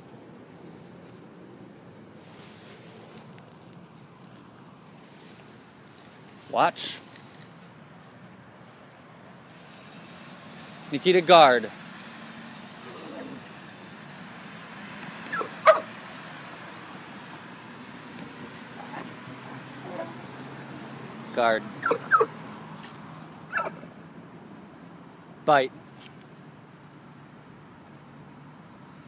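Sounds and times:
man speaking: 0:10.9 - 0:11.7, 0:21.3 - 0:21.7, 0:25.5 - 0:25.7
dog barking: 0:15.3 - 0:15.9, 0:21.8 - 0:22.3, 0:23.5 - 0:23.9.

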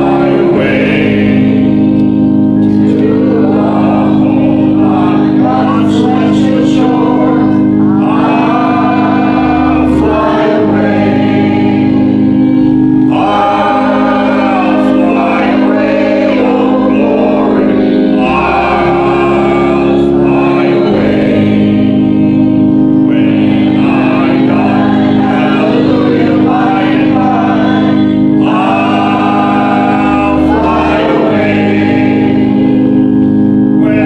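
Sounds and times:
congregation singing a hymn: 0:00.0 - 0:34.0
long held low notes: 0:00.0 - 0:34.0.

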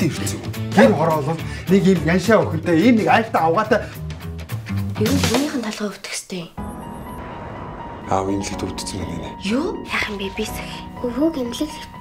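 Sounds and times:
background music with held tone: 0:00.0 - 0:05.4, 0:06.6 - 0:12.0.

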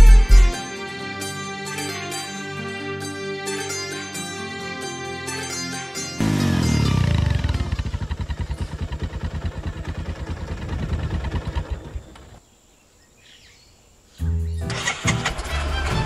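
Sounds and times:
music: 0:00.0 - 0:07.8, 0:14.2 - 0:16.0
motorcycle engine running: 0:06.2 - 0:12.4.

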